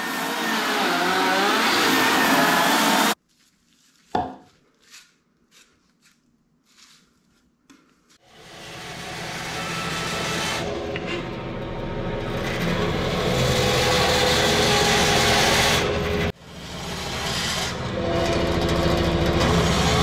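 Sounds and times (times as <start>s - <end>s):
bandsaw cutting wood: 0.0s - 3.2s, 8.2s - 11.4s, 12.1s - 20.0s.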